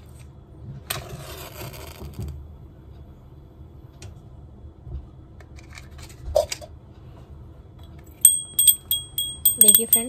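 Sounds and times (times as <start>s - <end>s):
small hand bell ringing: 8.2s - 10.0s.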